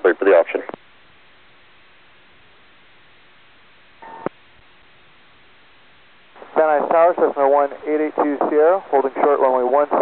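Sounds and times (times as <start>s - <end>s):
radio channel hiss: 0.0s - 0.8s, 4.0s - 10.0s.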